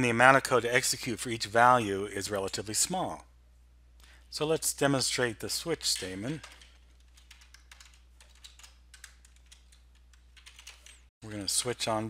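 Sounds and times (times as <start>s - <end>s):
computer keyboard typing: 6.0s - 11.1s.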